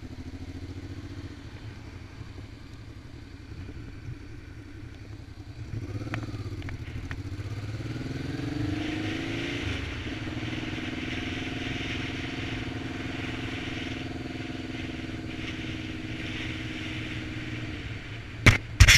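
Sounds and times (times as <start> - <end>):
motorcycle engine pulling away: 0.0 - 18.9
wind rush on microphone: 1.5 - 18.9.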